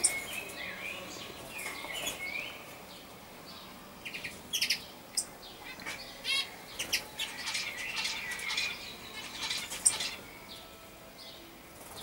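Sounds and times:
starling calling: 0:04.0 - 0:10.4.

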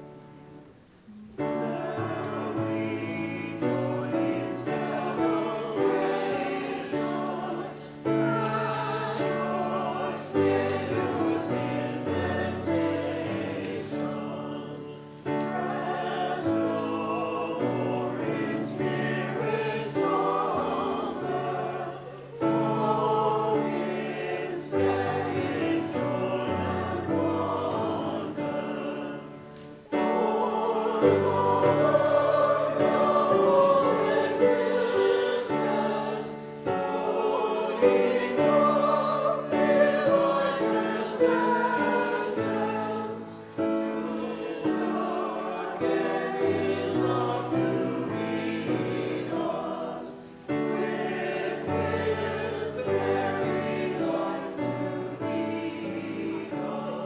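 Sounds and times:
choir singing sacred music: 0:00.0 - 0:57.0.

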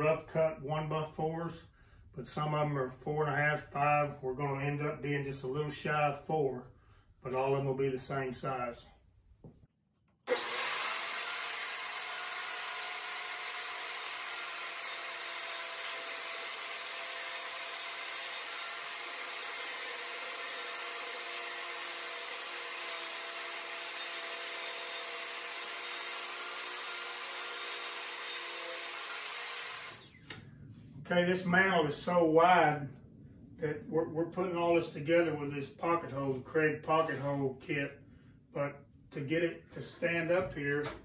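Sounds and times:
table saw whine: 0:10.3 - 0:30.4.

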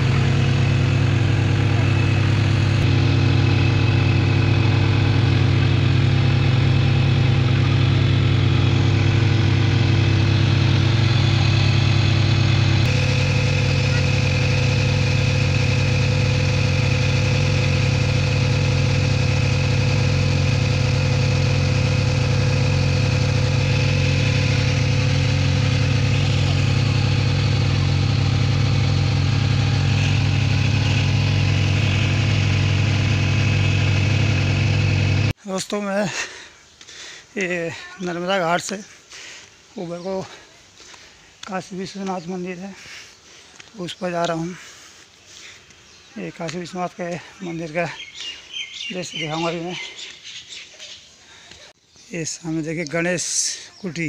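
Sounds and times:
motorboat engine running: 0:00.0 - 0:35.4.

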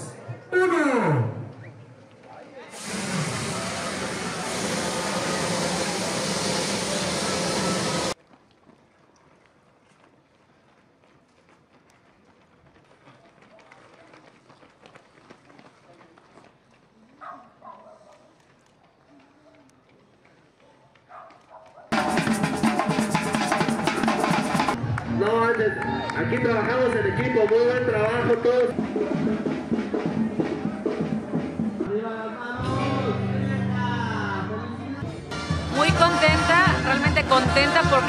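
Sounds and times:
faint street sound: 0:00.0 - 0:38.0
crowd roaring: 0:02.8 - 0:08.2, 0:24.1 - 0:31.6, 0:35.3 - 0:38.0
announcer counting down: 0:35.3 - 0:38.0.

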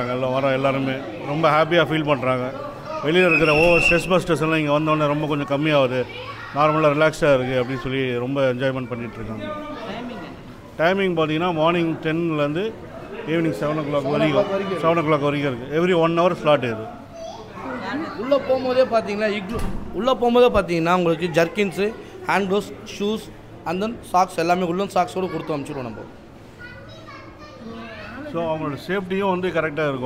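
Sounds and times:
children and people talking: 0:00.0 - 0:30.0
people calling out: 0:03.2 - 0:04.2
children's voices: 0:05.0 - 0:09.9, 0:17.0 - 0:19.0, 0:24.8 - 0:28.4.

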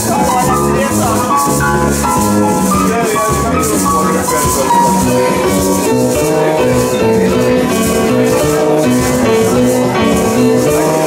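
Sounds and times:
jazz band playing: 0:00.0 - 0:11.0
maracas shaken: 0:00.0 - 0:11.0.

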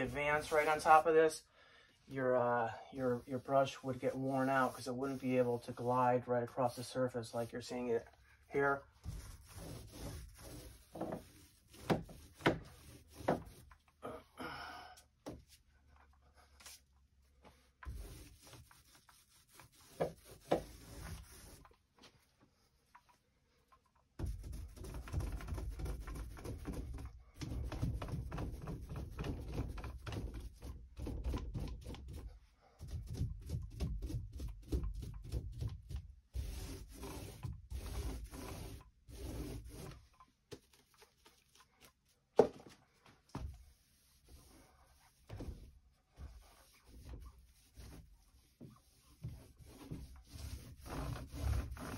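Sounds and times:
paintbrush scrubbing a door: 0:00.0 - 0:01.3, 0:03.0 - 0:14.0, 0:15.4 - 0:23.1, 0:24.2 - 0:42.2, 0:42.8 - 0:51.9.

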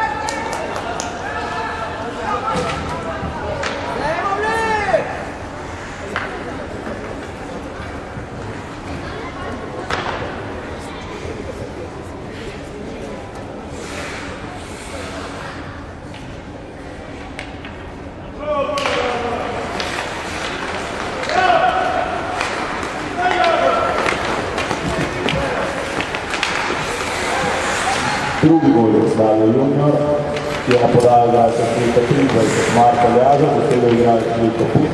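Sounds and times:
low din in ice rink: 0:00.0 - 0:34.9
hockey sticks and puck knocking: 0:09.8 - 0:10.3, 0:18.8 - 0:28.0, 0:30.4 - 0:34.9.

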